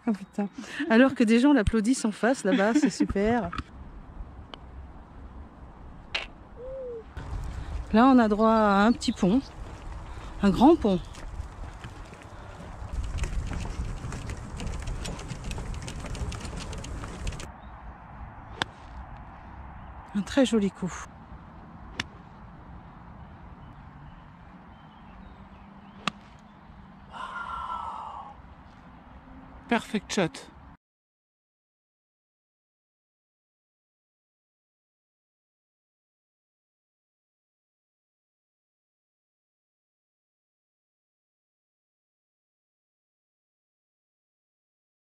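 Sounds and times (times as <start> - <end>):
wind rumbling on microphone: 3.0 - 25.8
low bird call: 6.2 - 7.2, 27.0 - 28.4
golf club striking ball: 25.9 - 26.3
breathy exclamation: 27.1 - 28.4.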